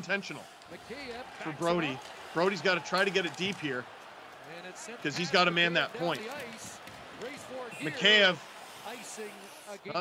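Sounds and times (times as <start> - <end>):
man speaking: 4.6 - 10.0.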